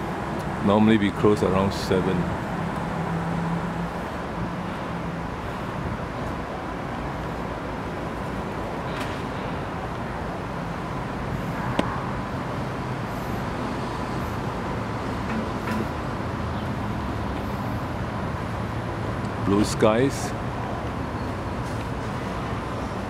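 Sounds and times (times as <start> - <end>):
distant traffic hum: 0.0 - 23.0.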